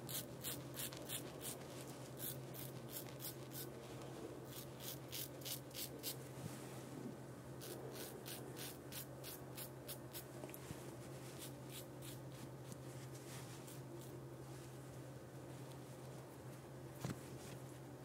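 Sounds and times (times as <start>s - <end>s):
razor scraping stubble: 7.6s - 10.3s.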